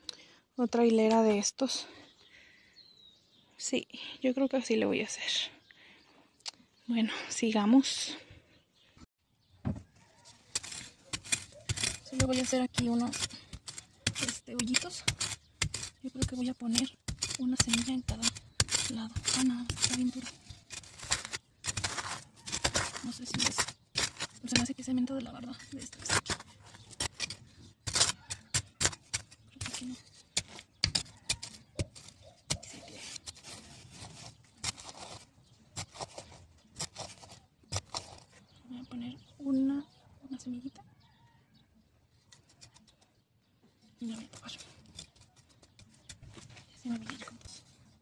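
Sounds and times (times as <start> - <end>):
fingers scratching dry soil: 10.2 - 38.6, 42.2 - 43.1, 44.0 - 48.0.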